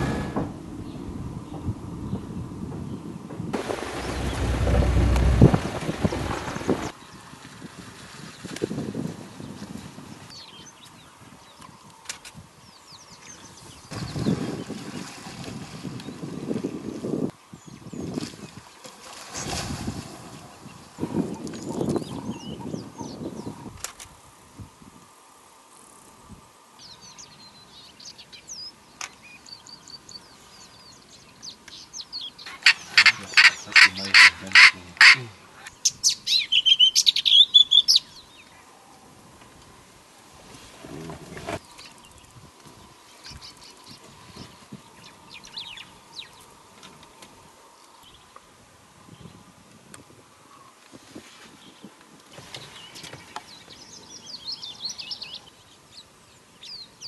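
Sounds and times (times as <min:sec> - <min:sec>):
wind buffeting microphone: 0:00.0 - 0:18.8, 0:19.4 - 0:25.1, 0:48.8 - 0:55.2
small birds chirping: 0:26.8 - 0:38.6, 0:52.5 - 0:57.0
bird calling loudly: 0:32.4 - 0:38.1.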